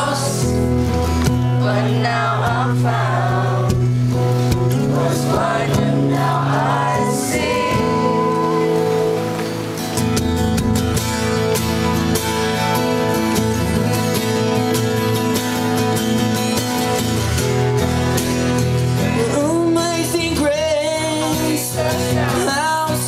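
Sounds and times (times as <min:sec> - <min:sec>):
people singing: 0:00.0 - 0:09.0, 0:19.0 - 0:23.0
acoustic guitars playing: 0:00.0 - 0:23.0.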